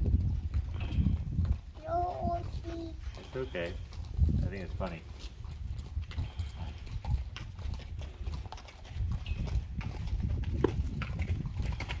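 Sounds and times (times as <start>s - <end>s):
horse mouthing and nuzzling: 0.0s - 12.0s.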